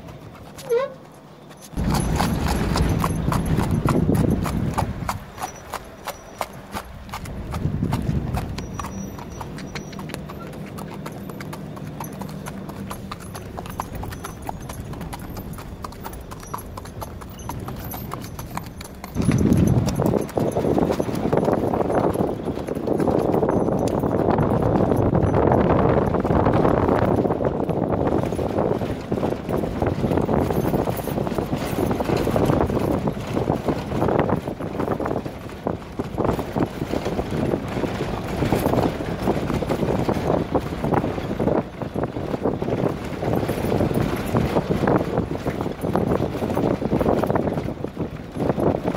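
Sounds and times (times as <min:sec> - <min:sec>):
hoofbeats on hard ground: 0:00.0 - 0:48.9.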